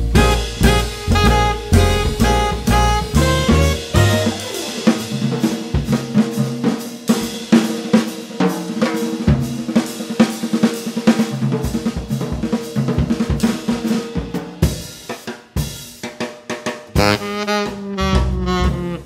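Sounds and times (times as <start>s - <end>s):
jazz drum kit solo: 0.0s - 19.0s.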